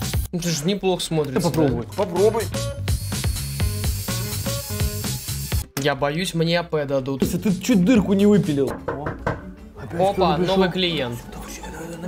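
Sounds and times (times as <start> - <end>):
background music with steady beat: 0.0 - 12.0
dental drill hissing: 2.4 - 5.7.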